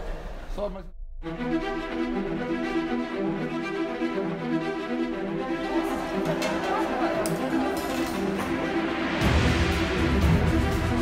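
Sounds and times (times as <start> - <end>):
background music with held notes: 1.2 - 11.0.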